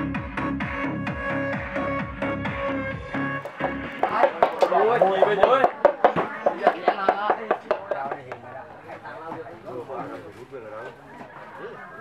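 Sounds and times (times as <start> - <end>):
rapid sharp knocks: 3.4 - 8.4
voices: 4.0 - 12.0.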